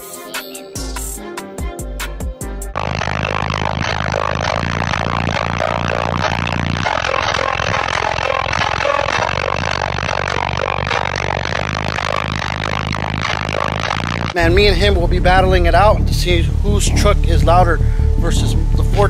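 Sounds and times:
loud subwoofer bass notes: 2.4 - 19.0.

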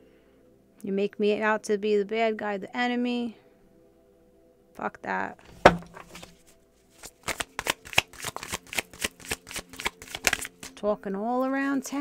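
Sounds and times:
cards being shuffled: 5.5 - 6.4, 7.0 - 10.8.

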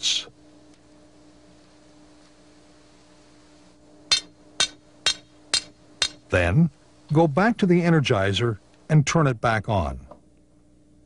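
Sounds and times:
hammer striking metal stakes: 4.1 - 6.2.

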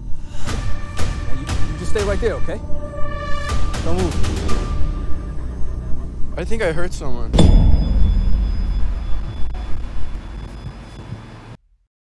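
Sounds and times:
deep low rumble: 0.0 - 11.6
faint high ringing tone: 7.3 - 11.6.

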